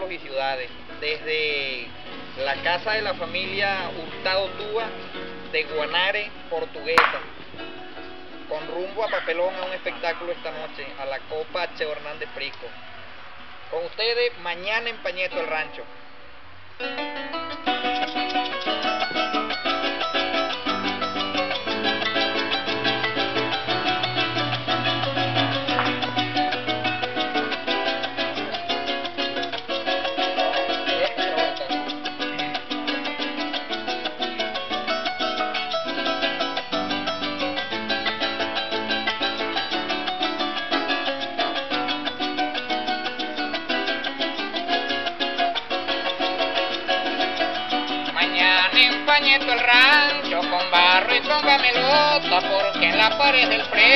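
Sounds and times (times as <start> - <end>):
harp bass line and melody: 0.0 - 11.2, 16.8 - 53.9
strummed cuatro: 0.0 - 53.9
maracas shaking: 1.1 - 10.8, 17.6 - 53.9.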